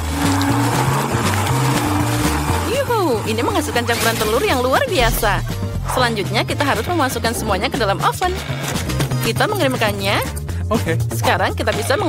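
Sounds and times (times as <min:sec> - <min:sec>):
background music with bass line: 0:05.0 - 0:06.4.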